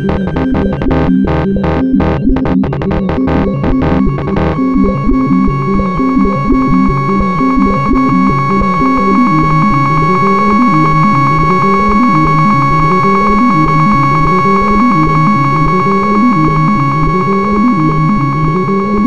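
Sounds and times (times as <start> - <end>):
high synth drone tone: 0.0 - 19.0
low synth line: 0.0 - 19.0.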